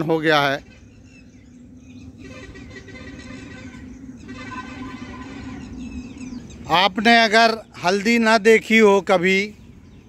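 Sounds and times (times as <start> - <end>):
bird chirps: 0.0 - 8.2, 9.2 - 10.0
steady low hum: 0.0 - 10.0.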